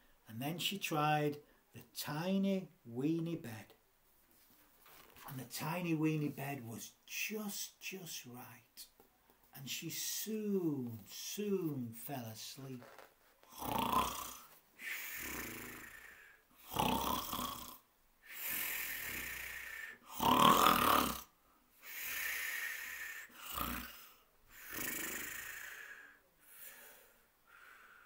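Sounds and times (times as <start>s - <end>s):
man mock snoring: 13.5s - 27.0s.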